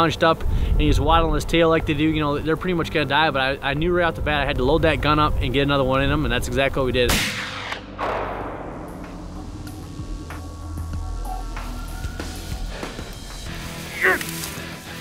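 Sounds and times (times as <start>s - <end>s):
faint background music: 0.0s - 8.2s
gunshot: 7.1s - 9.5s.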